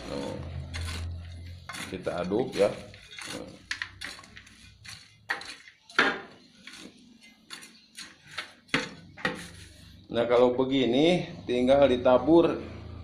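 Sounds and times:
scoop scraping plastic tub: 0:00.0 - 0:10.0.

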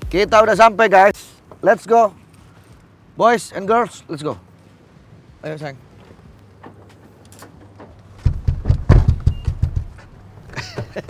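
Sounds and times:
car door shutting: 0:06.6 - 0:10.1.

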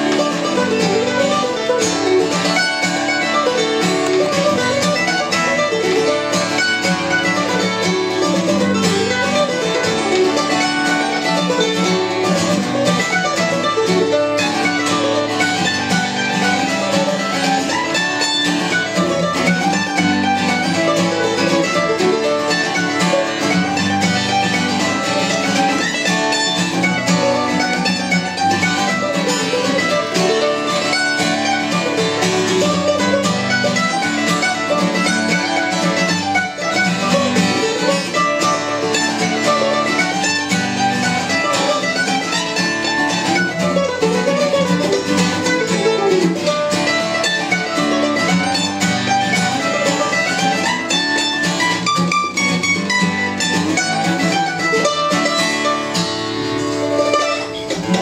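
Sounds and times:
acoustic guitar and mandolin tune: 0:00.0 - 0:58.0.

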